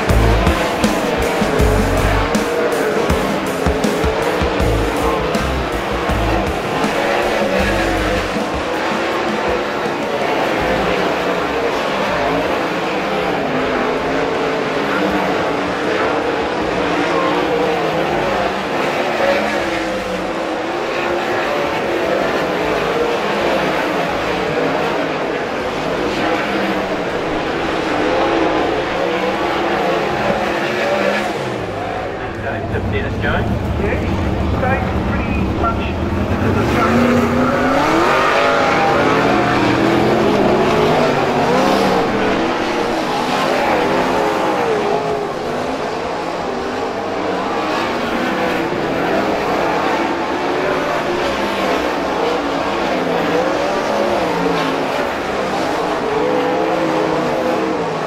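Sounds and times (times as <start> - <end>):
racing car engines passing: 0.0 - 58.0.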